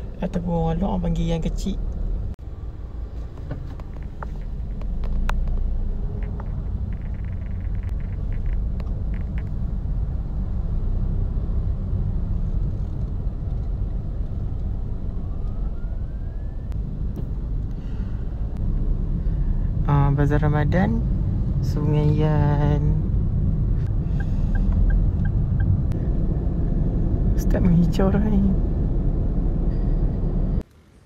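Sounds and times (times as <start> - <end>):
car engine and road noise: 0.0 - 31.0.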